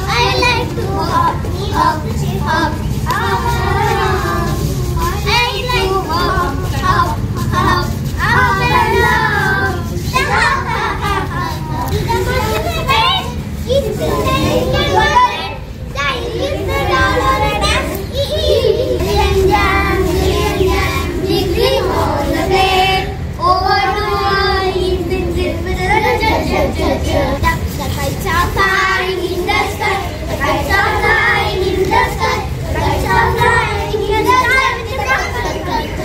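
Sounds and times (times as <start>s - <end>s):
children singing: 0.0s - 36.0s
steady low rumble: 0.0s - 36.0s.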